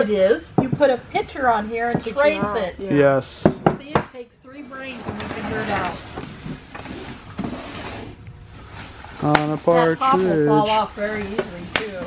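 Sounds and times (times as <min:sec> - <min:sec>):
plastic trash bag rustling: 0:04.9 - 0:07.4, 0:08.4 - 0:12.0.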